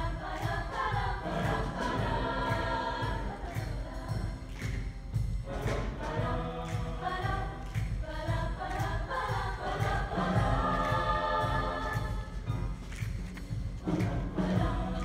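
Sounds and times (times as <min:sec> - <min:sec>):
accompaniment with steady beat: 0:00.0 - 0:15.0
choir singing in harmony: 0:00.0 - 0:15.0.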